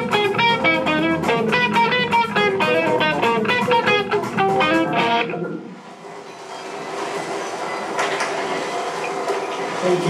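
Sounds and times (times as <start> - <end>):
electric guitar notes ringing: 0.0 - 5.8.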